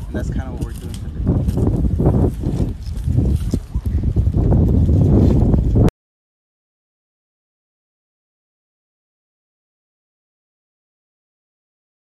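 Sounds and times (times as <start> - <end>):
branches dragged through scrub: 0.5 - 5.8.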